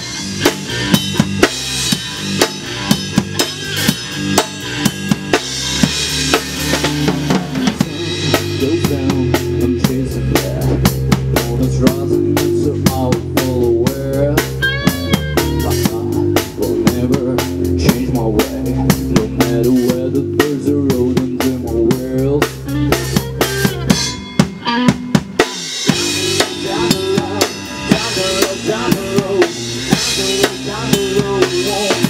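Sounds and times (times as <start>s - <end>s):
drum kit: 0.0s - 32.0s
electric bass: 0.0s - 32.0s
electric guitar lead line: 0.0s - 32.0s.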